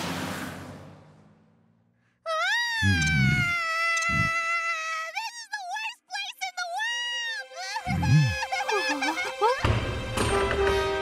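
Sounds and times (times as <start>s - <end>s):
animated child screaming: 2.3s - 5.8s.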